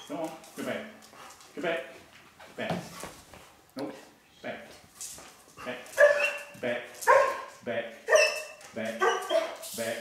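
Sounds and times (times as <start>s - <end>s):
dog barking: 6.0s - 7.5s, 8.1s - 9.6s.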